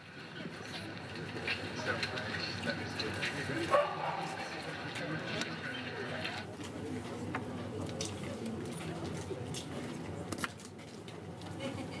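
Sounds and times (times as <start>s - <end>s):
faint murmur of voices: 0.0s - 12.0s.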